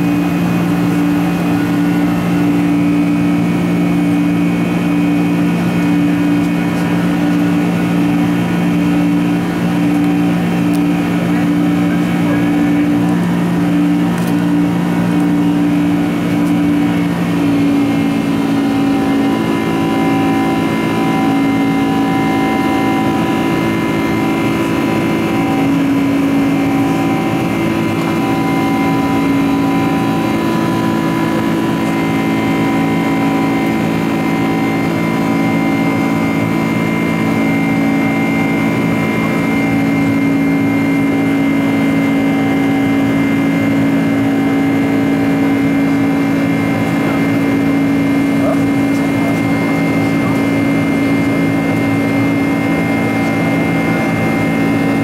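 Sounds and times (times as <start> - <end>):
high engine whine: 0.0 - 55.0
jet engine drone in cabin: 0.0 - 55.0.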